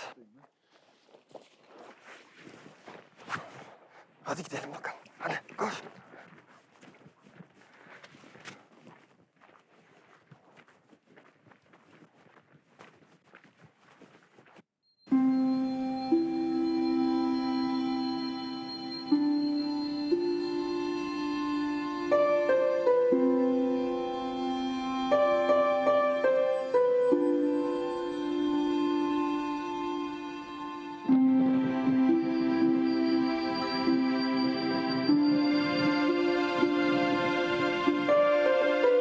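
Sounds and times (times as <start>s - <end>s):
footsteps and rustling on forest ground: 0.0s - 14.7s
music with long held notes: 15.1s - 39.0s.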